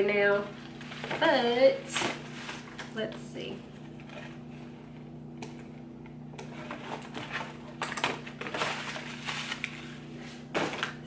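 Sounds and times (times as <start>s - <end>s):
steady low hum: 0.0s - 11.0s
packaging crinkling and rustling: 0.3s - 11.0s.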